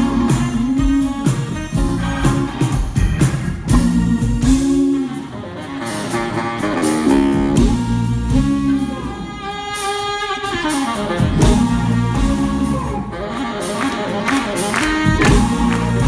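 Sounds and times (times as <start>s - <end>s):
funk band playing: 0.0s - 16.0s.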